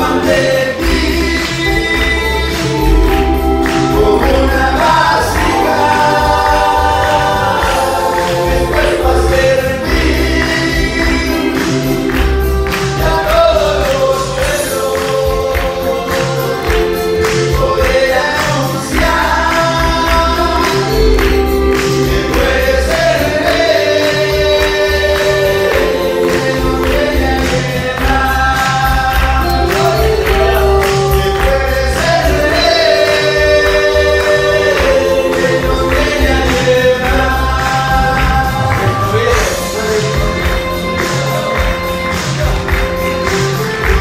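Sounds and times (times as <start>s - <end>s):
man singing into a microphone: 0.0s - 41.1s
acoustic guitar: 0.0s - 44.0s
keyboard: 0.0s - 44.0s
pulsing bass beat: 0.0s - 44.0s.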